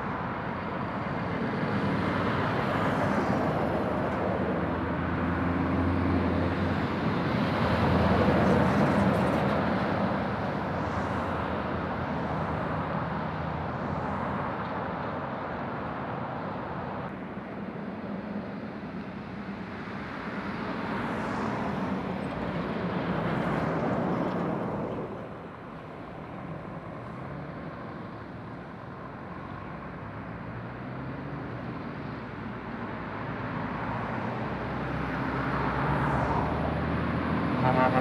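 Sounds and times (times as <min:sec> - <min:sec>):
articulated lorry approaching: 0:00.0 - 0:38.0
diesel engines: 0:00.0 - 0:38.0.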